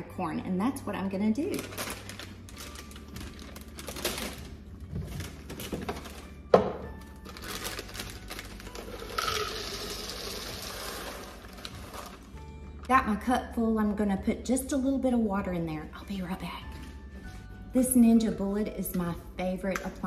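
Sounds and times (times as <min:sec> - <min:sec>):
background music: 0:00.0 - 0:20.0
plastic bag crinkling: 0:01.5 - 0:12.4
frozen corn poured into blender cup: 0:07.3 - 0:12.4.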